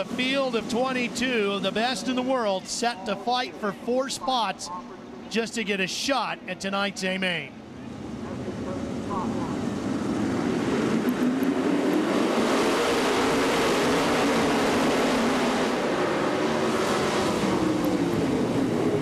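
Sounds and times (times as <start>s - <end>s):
race car engines revving: 0.0s - 19.0s.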